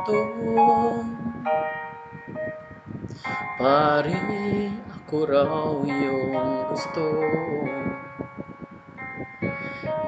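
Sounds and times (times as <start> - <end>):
bell-like keyboard chord: 0.0 - 10.0.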